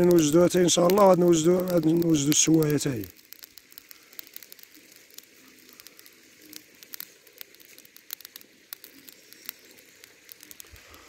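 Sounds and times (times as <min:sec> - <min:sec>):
charcoal embers crackling: 0:00.0 - 0:11.0
faint pops and snaps: 0:00.8 - 0:11.0.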